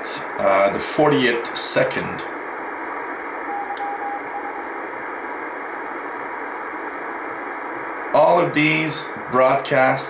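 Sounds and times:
radio static hiss: 0.0 - 10.0
faint morse code tone: 3.4 - 4.8.

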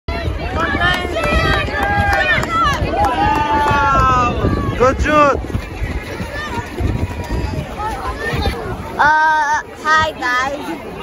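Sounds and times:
spectators shouting: 0.1 - 5.4
wind rumbling on microphone: 0.1 - 11.0.

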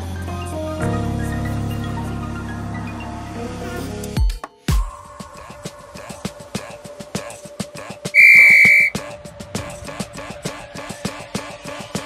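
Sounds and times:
background music with steady beat: 3.9 - 12.0.

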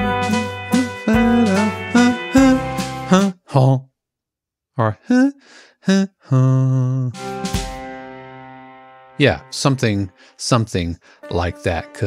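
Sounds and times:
man humming: 0.0 - 3.9, 4.8 - 7.2.

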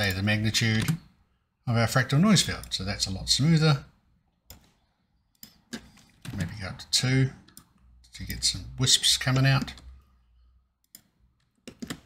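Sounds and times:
keyboard clicks: 10.8 - 12.0.

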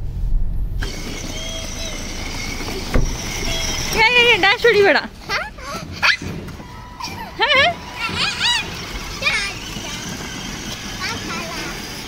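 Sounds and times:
car rumbling slowly: 0.0 - 12.0.

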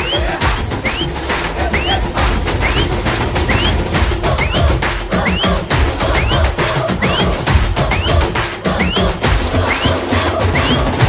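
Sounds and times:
music with heavy bass beat: 0.0 - 11.0
short rising whistle-like note: 2.6 - 3.8.

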